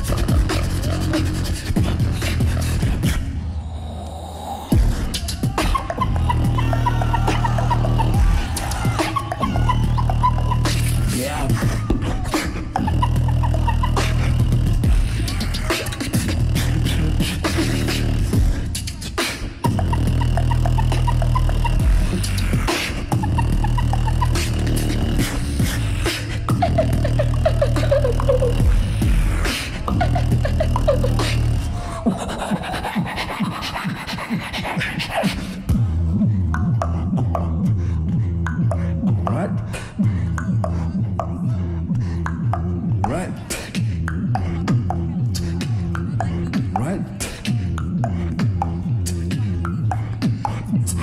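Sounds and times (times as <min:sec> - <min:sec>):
beatbox kick drum sounds: 0:00.0 - 0:03.4, 0:04.5 - 0:51.0
deep buzzing beatbox bass: 0:00.0 - 0:03.4, 0:04.7 - 0:51.0
rhythmic vocal blips: 0:00.0 - 0:51.0
deep bass hum: 0:06.0 - 0:12.0, 0:12.8 - 0:18.7, 0:19.7 - 0:31.8.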